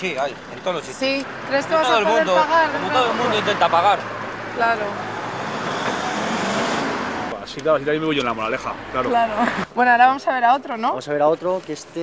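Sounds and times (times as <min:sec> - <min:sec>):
car pulling away: 0:00.0 - 0:09.0.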